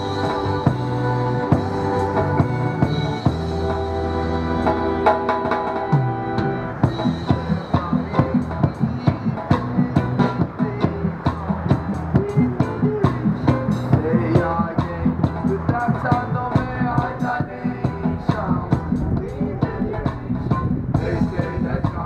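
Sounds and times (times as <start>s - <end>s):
bass notes: 0.0s - 22.0s
keyboard chords and notes: 0.0s - 22.0s.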